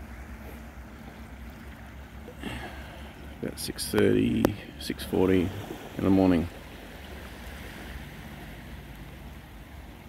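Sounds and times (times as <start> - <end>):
small waves washing onto beach: 0.0 - 10.0
steady low rumble: 0.0 - 10.0.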